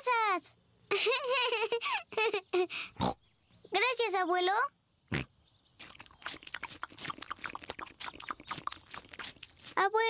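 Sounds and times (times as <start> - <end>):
wet chewing and crunching: 5.8 - 10.0.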